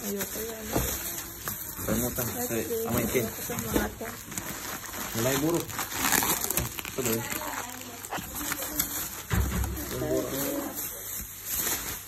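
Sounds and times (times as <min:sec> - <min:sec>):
plastic and bubble wrap rustling: 0:00.0 - 0:12.0.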